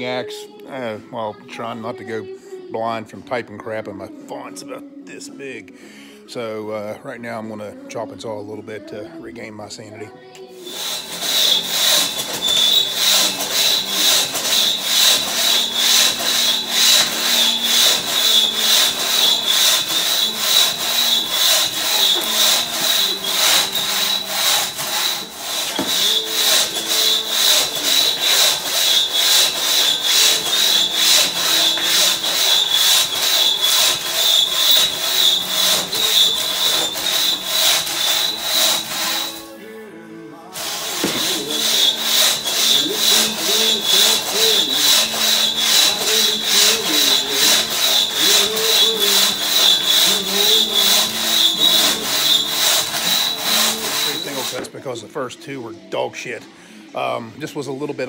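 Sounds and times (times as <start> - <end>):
crosscut saw cutting log: 10.6 - 39.6, 40.6 - 54.7.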